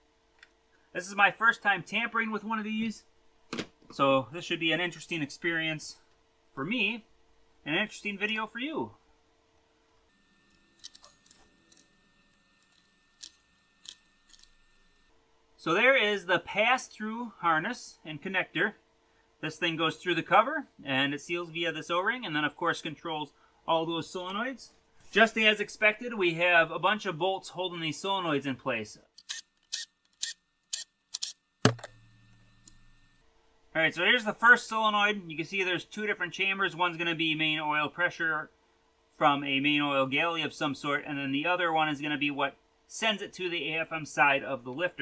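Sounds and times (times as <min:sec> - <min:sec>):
low steady hum: 0:00.0 - 0:45.0
plastic connector clicks: 0:31.7 - 0:31.9.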